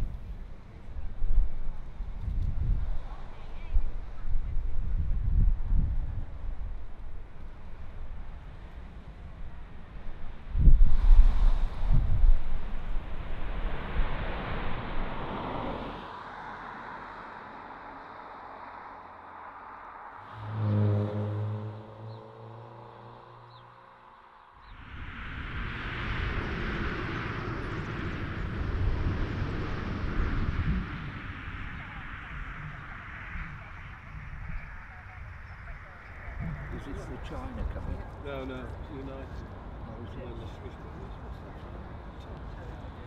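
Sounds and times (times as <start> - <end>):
wind buffeting microphone: 0.0 - 15.8, 24.6 - 43.0
steady rushing noise: 0.0 - 22.2, 23.8 - 43.0
jet airliner low rumble: 0.0 - 22.7, 23.4 - 43.0
pitched engine hum: 20.2 - 33.8.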